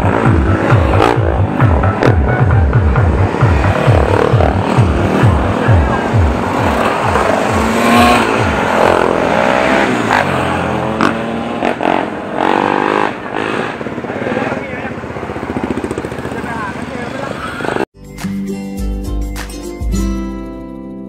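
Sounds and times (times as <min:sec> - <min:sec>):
electronic music with bass beat: 0:00.0 - 0:08.8, 0:18.0 - 0:20.9
dirt bike engines revving: 0:00.0 - 0:17.9.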